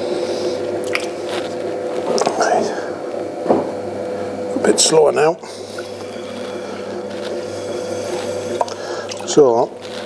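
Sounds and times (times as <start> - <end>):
potter's wheel motor hum: 0.0 - 10.0
wet clay rubbing under hands: 5.6 - 10.0.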